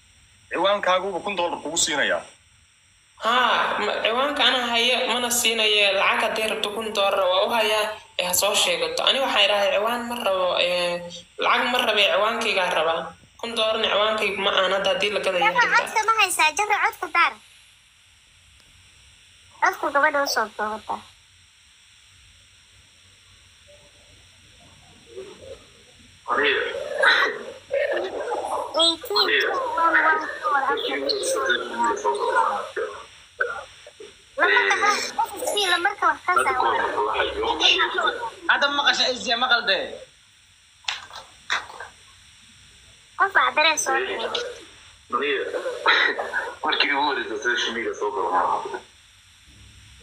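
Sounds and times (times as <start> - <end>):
person talking: 3.2 - 17.4, 26.3 - 39.2, 43.2 - 44.6
person making drawn-out vocal sounds: 26.3 - 35.6.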